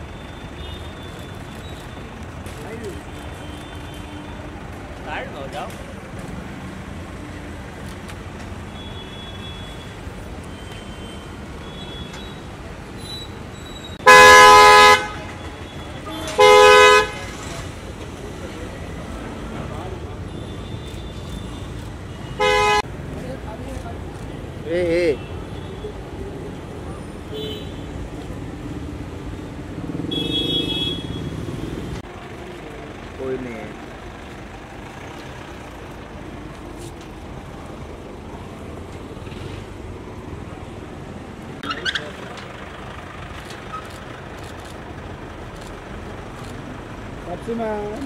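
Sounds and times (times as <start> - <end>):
car engines in traffic: 0.0 - 48.0
car horn: 13.9 - 17.4, 20.3 - 22.9, 30.1 - 31.4.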